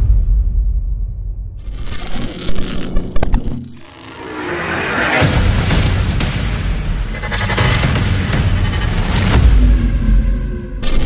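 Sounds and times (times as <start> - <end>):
high steady ringing: 1.6 - 4.0.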